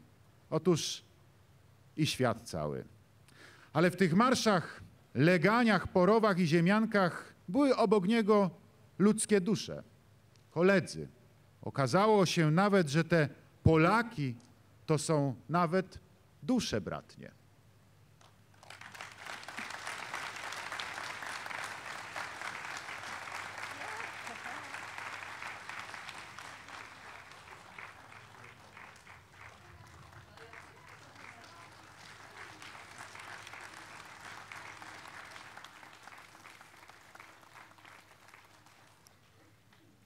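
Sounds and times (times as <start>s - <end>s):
audience applause: 18.5s - 39.4s.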